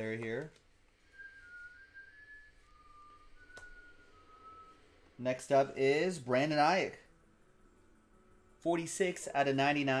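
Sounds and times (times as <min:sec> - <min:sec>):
person whistling softly: 0:01.0 - 0:05.2.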